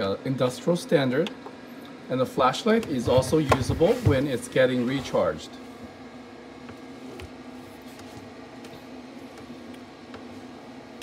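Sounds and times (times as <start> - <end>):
cooling fan hum: 0.0 - 11.0.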